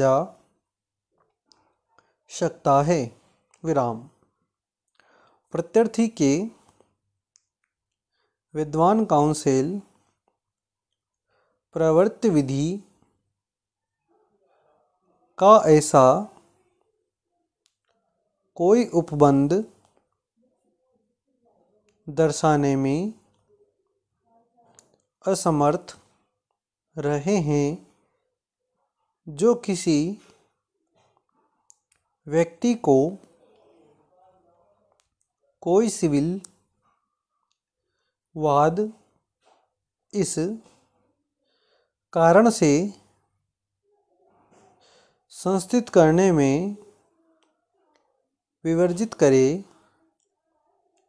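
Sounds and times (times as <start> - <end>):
person speaking: 1.5 - 4.2, 8.5 - 10.0, 11.7 - 13.0, 15.4 - 16.6, 18.6 - 19.9, 21.8 - 23.5, 24.6 - 26.1, 27.0 - 28.0, 29.2 - 30.4, 31.7 - 36.6, 38.4 - 39.1, 40.1 - 40.8, 42.1 - 43.2, 44.9 - 47.1, 48.6 - 50.0.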